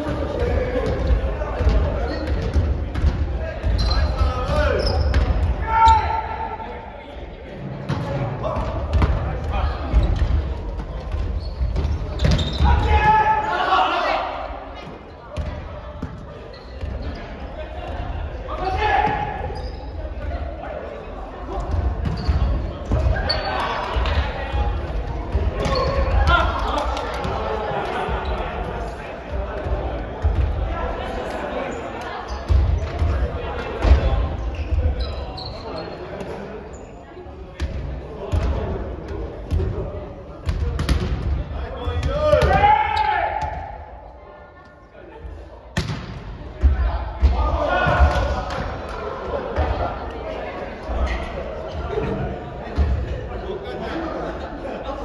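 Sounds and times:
players shouting in a hall: 0:00.0 - 0:11.0, 0:12.0 - 0:37.2, 0:41.3 - 0:55.0.

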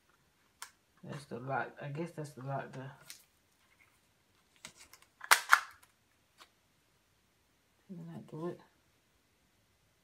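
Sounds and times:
plastic tag gun clicking: 0:05.2 - 0:05.9.

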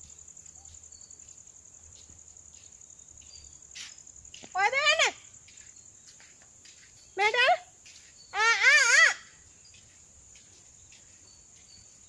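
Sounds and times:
child calling out: 0:08.4 - 0:09.3.

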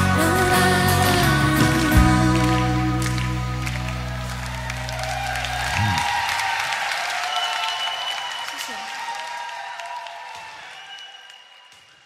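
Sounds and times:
audience applauding and cheering: 0:00.6 - 0:12.0.

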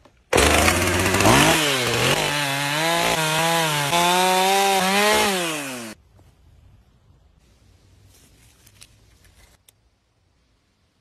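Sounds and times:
chainsaw cutting log: 0:00.3 - 0:06.0.

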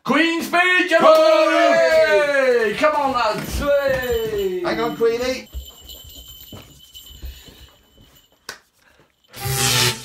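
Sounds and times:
people rustling and shuffling: 0:02.2 - 0:09.3.

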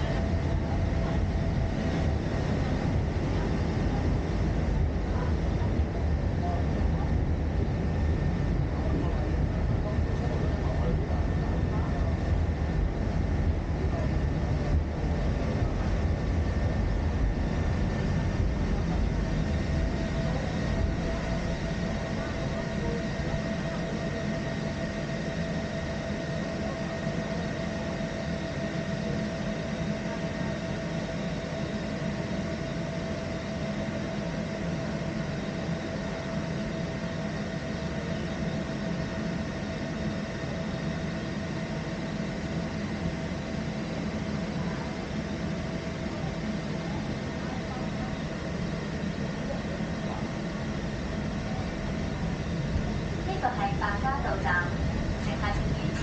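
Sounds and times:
tram car rumbling on track: 0:00.0 - 0:07.7
faint steady whine: 0:00.0 - 0:56.0.

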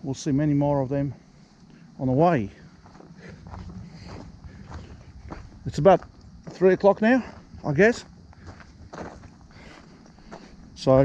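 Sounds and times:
footsteps on dirt and leaves: 0:02.4 - 0:11.0
wind rumble on microphone: 0:02.6 - 0:11.0.

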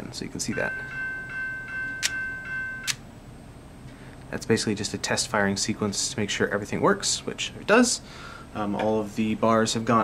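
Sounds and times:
electronic crossing bell ringing: 0:00.4 - 0:03.0.

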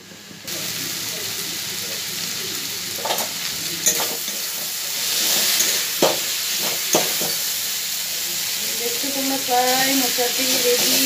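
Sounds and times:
food sizzling in a wok: 0:00.0 - 0:11.0.

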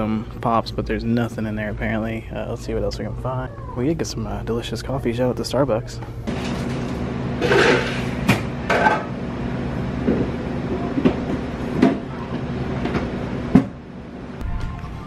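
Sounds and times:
machine hum: 0:00.0 - 0:15.0
cups and utensils clattering: 0:06.3 - 0:09.1.

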